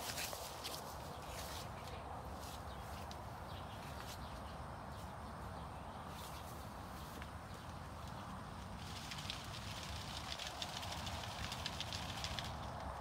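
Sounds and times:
dense crackling clicks: 7.6s - 13.0s.

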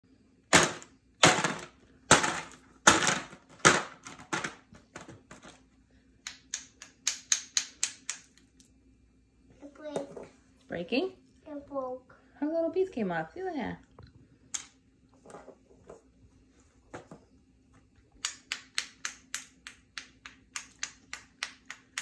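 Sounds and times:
toy hammer striking ice cubes: 6.3s - 8.3s.

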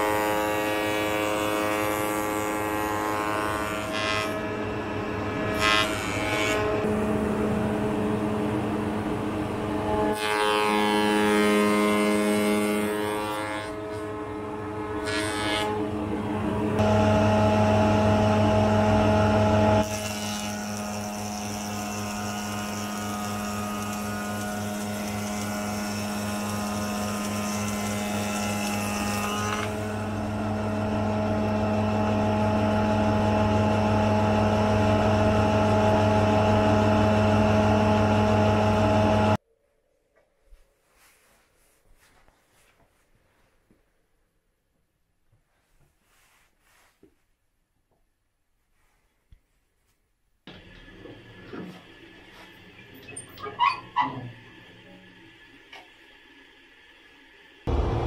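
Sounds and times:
spindle moulder motor hum: 0.1s - 39.4s, 50.5s - 58.0s
timber being cut: 16.8s - 34.4s.

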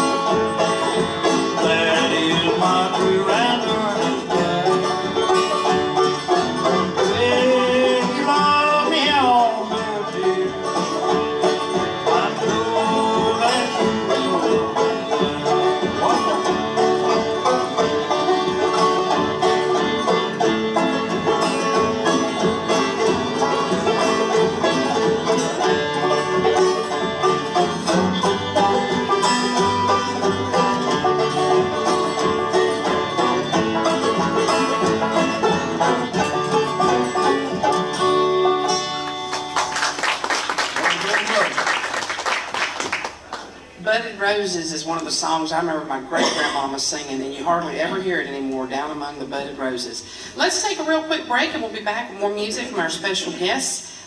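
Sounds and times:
string band playing: 0.0s - 54.0s.

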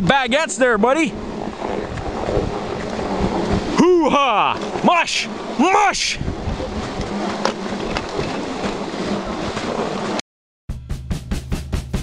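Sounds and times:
wind rumbling on microphone: 0.0s - 10.2s
music with fast drum beat: 10.7s - 12.0s.

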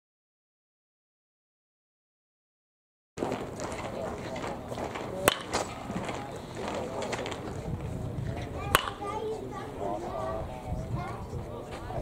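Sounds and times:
bat cracking ball: 3.2s - 7.5s, 8.7s - 9.1s.

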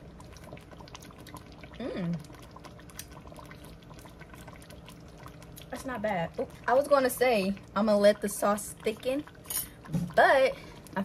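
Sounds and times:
soup bubbling in a pot: 0.0s - 11.0s.

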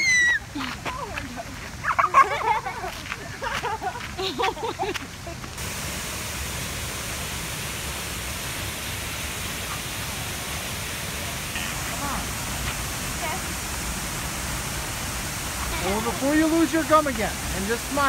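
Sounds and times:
waterfall and rushing creek: 0.0s - 18.0s.

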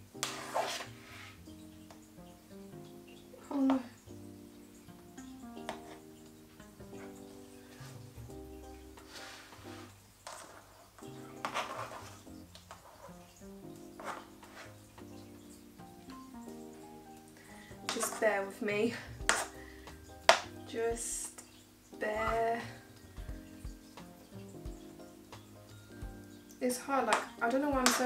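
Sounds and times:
soft background music: 0.0s - 28.0s
metal spatula scraping: 0.2s - 1.5s, 9.0s - 13.4s, 14.0s - 14.8s.

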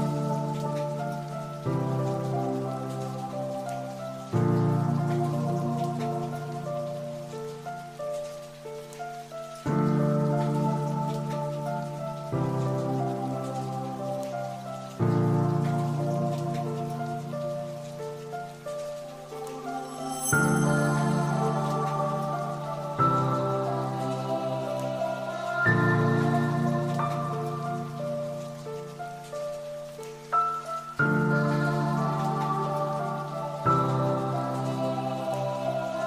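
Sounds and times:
rain-like patter: 0.0s - 36.0s.

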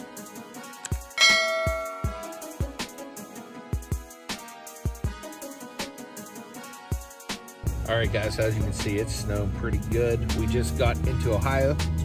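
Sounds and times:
music with drum beat: 1.0s - 12.0s
loud bell-like chime: 1.2s - 2.9s.

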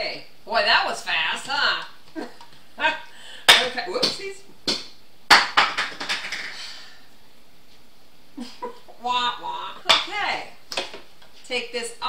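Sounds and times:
woman's wordless voice: 0.0s - 2.0s, 8.9s - 10.6s, 11.4s - 12.0s.

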